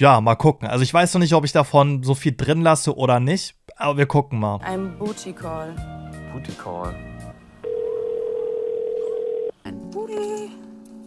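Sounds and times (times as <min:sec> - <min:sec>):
telephone dial tone: 0:07.6 - 0:09.6.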